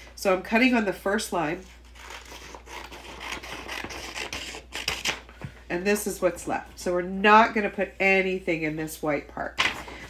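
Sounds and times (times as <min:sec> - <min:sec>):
scissors cutting paper: 0:01.6 - 0:05.2.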